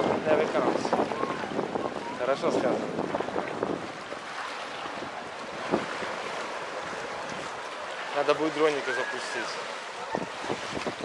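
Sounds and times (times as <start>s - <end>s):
sea water sloshing and lapping: 0.0s - 11.0s
wind on microphone: 0.0s - 11.0s.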